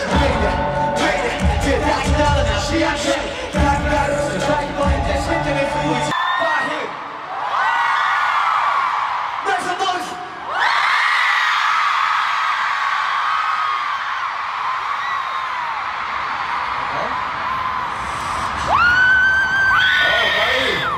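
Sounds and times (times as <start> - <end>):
crowd screaming and cheering: 0.0 - 20.9
long scream close to microphone: 10.4 - 15.9, 16.7 - 20.9.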